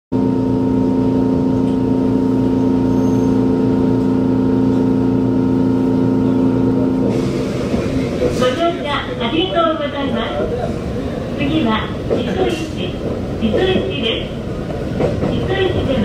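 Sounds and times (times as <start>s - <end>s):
electric train hum: 0.1s - 16.0s
train rumble: 0.2s - 16.0s.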